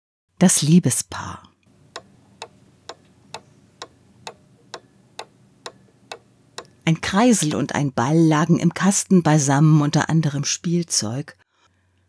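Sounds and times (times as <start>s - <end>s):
steady clock-like ticking: 1.8s - 6.8s.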